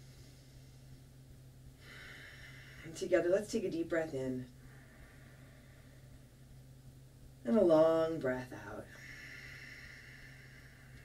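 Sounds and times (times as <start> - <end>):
low steady hum: 0.0 - 11.0
long breath out: 1.8 - 2.8, 8.9 - 11.0.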